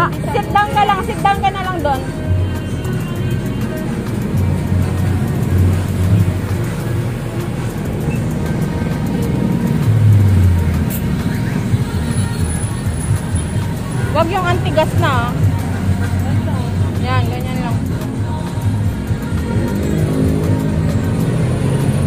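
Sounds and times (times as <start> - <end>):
background music: 0.0 - 22.0
street traffic rumbling: 0.0 - 22.0.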